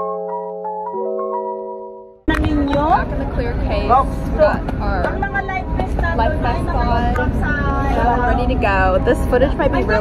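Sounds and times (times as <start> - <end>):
woman talking: 2.3 - 10.0.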